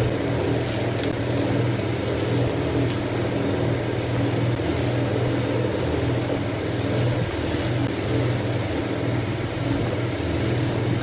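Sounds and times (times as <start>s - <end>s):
plastic packets crinkling: 0.0s - 3.9s
low mechanical hum: 0.0s - 11.0s.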